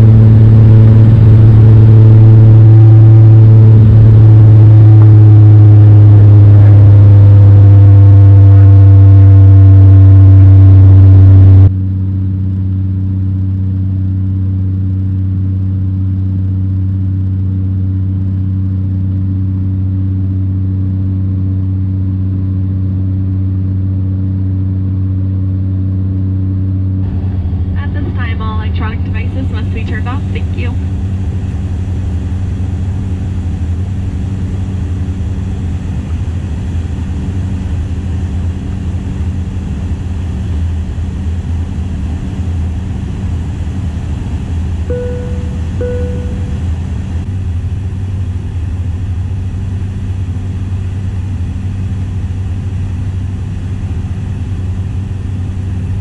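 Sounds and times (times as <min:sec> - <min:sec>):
turboprop engine drone: 0:00.0 - 0:56.0.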